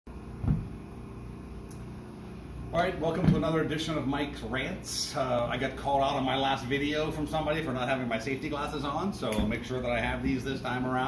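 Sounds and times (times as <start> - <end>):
low background hum: 0.1 - 11.0
dull thump: 0.4 - 0.8, 3.2 - 3.5.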